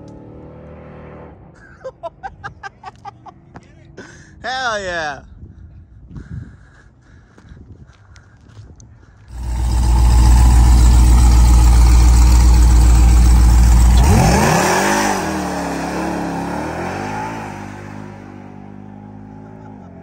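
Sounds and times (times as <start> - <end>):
tyres spinning in burnout: 9.3 - 17.8
supercharged engine revving: 9.3 - 18.5.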